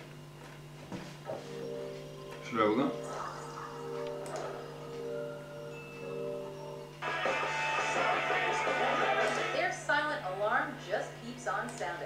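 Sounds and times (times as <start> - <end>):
soft bell-like music tones: 1.4 - 7.0.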